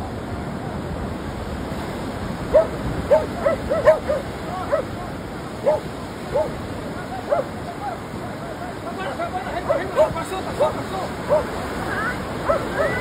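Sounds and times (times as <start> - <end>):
surf breaking on beach: 0.0 - 13.0
dog barking: 2.5 - 5.0, 5.6 - 6.6, 7.2 - 7.6, 9.6 - 11.6, 12.4 - 13.0.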